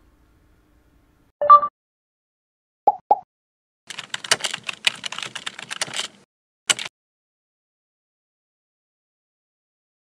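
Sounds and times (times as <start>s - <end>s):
keyboard key clicks: 6.7s - 6.9s.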